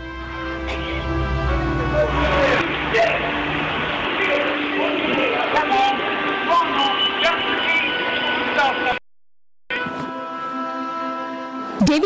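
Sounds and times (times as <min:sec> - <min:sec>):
steady hum: 0:00.0 - 0:08.4
sustained music chord: 0:00.0 - 0:08.8
indistinct voices: 0:00.3 - 0:09.0.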